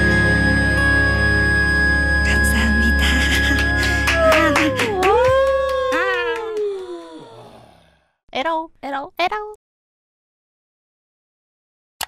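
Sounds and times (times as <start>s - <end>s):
low accompaniment: 0.0s - 5.8s
woman's drawn-out vocal sound: 2.9s - 7.8s.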